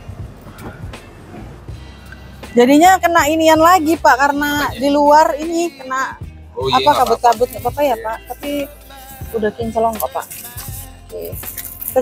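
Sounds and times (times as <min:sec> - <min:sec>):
low steady rumble: 0:00.0 - 0:10.0
faint music: 0:00.0 - 0:12.0
car door opening: 0:00.4 - 0:01.6.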